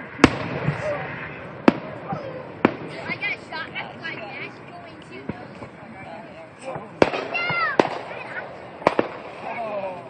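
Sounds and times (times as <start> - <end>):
firework shells bursting: 6.7 - 9.6.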